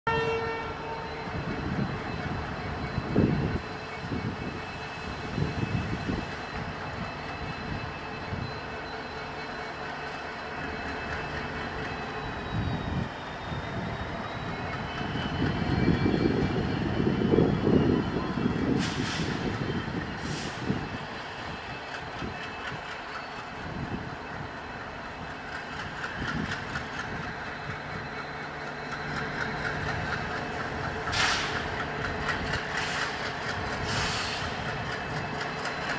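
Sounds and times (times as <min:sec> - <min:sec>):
train horn: 0:00.1 - 0:01.2
diesel locomotive engine chugging: 0:00.1 - 0:35.9
short air hisses: 0:18.8 - 0:19.4, 0:31.1 - 0:31.6, 0:33.8 - 0:34.5.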